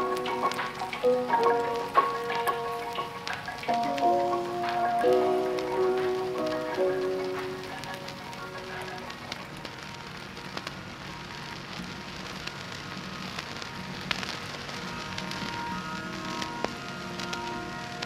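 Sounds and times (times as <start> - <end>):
sparse held music notes: 0.0 - 10.1
crackling hiss: 0.0 - 18.0.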